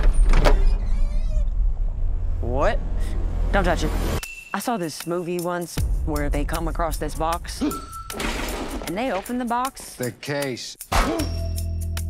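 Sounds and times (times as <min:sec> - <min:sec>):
deep rumble: 0:00.7 - 0:04.2.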